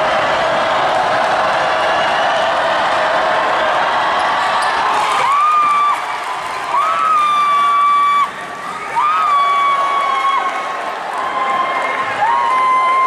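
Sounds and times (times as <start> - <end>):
gym crowd noise: 0.0 - 13.0.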